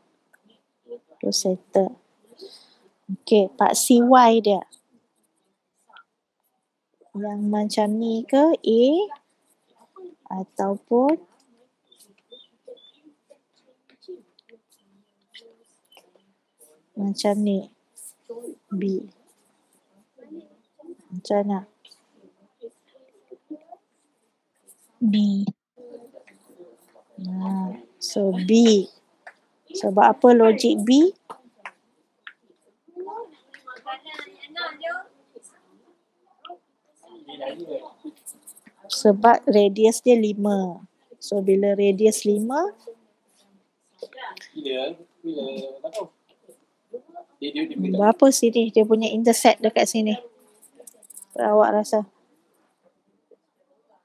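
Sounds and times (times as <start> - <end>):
person speaking softly: 7.2 - 9.2, 16.9 - 19.1, 25.0 - 28.9, 29.7 - 31.7, 37.1 - 43.0, 44.0 - 46.1, 47.0 - 52.1
faint murmured voice: 9.7 - 28.9, 29.7 - 39.3, 42.3 - 48.2, 50.2 - 51.5.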